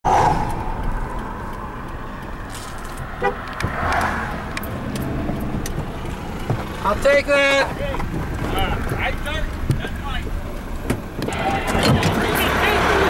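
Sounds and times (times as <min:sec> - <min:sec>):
engine and road rumble: 0:00.0 - 0:13.0.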